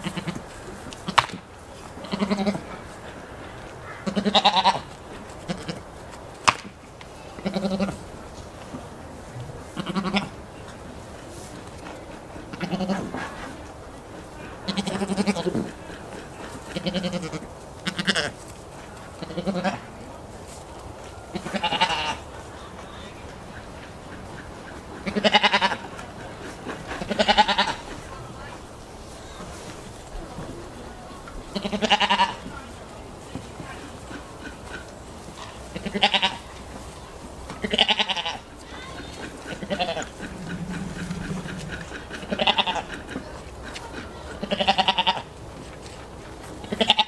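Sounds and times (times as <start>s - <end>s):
goat bleating: 0.0s - 0.4s, 2.0s - 2.6s, 4.0s - 4.9s, 12.6s - 13.0s, 14.7s - 15.6s, 16.7s - 18.3s, 21.3s - 22.2s, 25.1s - 25.9s, 27.0s - 27.9s, 31.5s - 32.4s, 35.7s - 36.5s, 37.6s - 42.9s, 43.6s - 45.3s, 46.8s - 47.0s.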